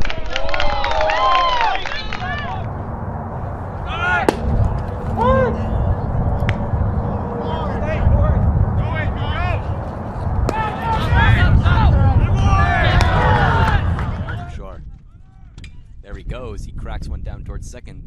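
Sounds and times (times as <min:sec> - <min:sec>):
voices calling out: 0:01.2 - 0:14.6
steady low rumble: 0:01.6 - 0:18.0
sharp crack: 0:04.2 - 0:04.9.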